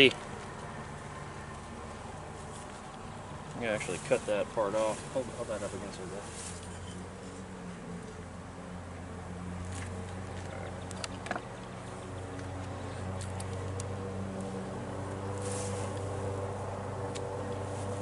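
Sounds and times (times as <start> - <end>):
hive frame clicks: 10.1 - 14.0.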